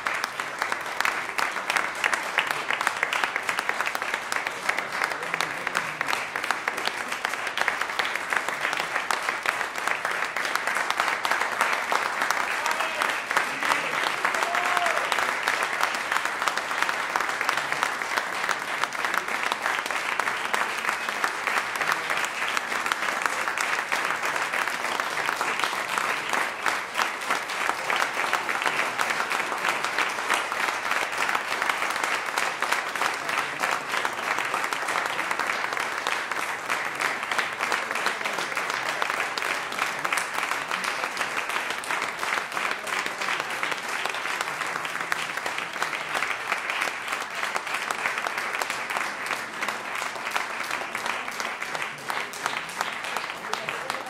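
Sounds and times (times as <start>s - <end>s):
audience applauding: 0.0s - 54.0s.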